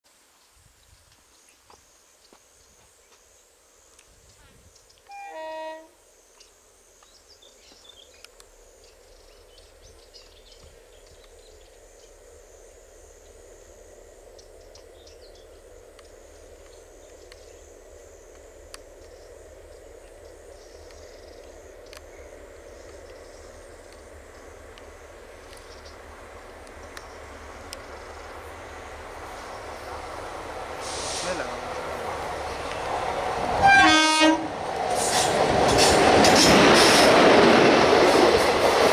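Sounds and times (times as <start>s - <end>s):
train rumbling through tunnel: 2.5s - 38.9s
train horn blast: 5.1s - 6.0s, 33.6s - 34.6s.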